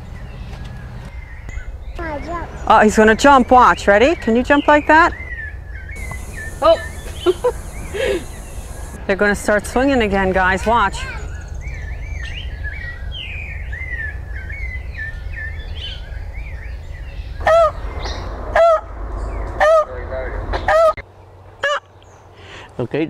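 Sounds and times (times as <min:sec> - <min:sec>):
high chirping calls: 0:03.4 - 0:09.0, 0:10.5 - 0:16.1.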